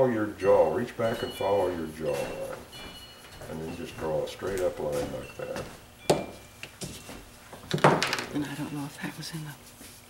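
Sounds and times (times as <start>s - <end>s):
wooden block knocking on table: 6.1s - 6.4s, 7.7s - 8.3s.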